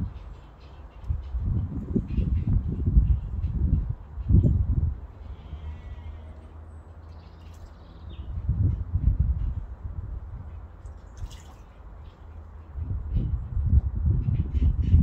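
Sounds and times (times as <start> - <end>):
owl splashing in water: 10.8 - 11.8.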